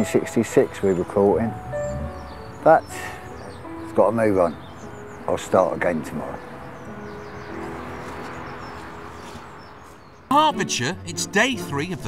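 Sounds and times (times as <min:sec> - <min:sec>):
small birds chirping: 0:00.0 - 0:12.0
soft background music: 0:00.0 - 0:12.0.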